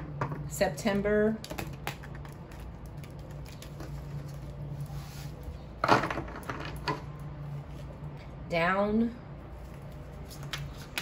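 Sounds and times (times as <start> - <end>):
steady low hum: 0.0 - 11.0
cards handled on a table: 9.9 - 11.0.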